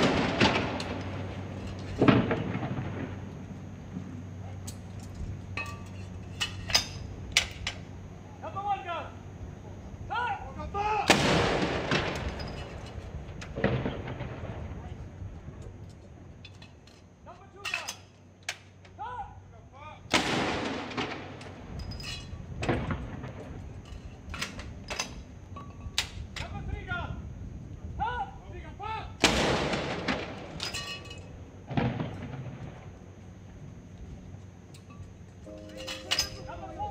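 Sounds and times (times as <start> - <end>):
field gun blast: 0.0 - 1.4, 11.1 - 12.2, 20.1 - 21.4, 29.2 - 30.6, 31.7 - 32.6
shouted commands: 10.1 - 11.1, 19.0 - 20.0, 28.0 - 29.2.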